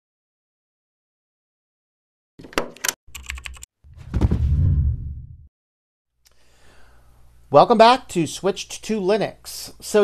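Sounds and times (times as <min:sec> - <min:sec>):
keyboard typing clicks: 0:02.7 - 0:03.7
deep bass-heavy sound: 0:03.9 - 0:05.5.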